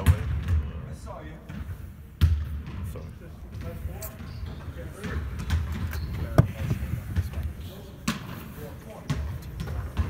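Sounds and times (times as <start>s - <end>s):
basketballs bouncing on court: 0.0s - 10.0s.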